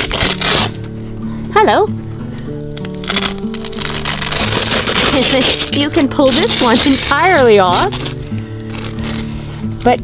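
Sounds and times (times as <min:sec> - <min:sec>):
vinyl sheet crinkling: 0:00.0 - 0:00.9, 0:02.7 - 0:10.0
music with held notes: 0:00.0 - 0:10.0.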